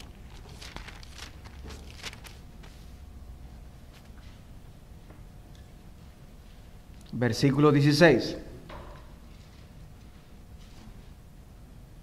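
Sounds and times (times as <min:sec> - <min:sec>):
book pages being leafed through: 0:00.0 - 0:03.0.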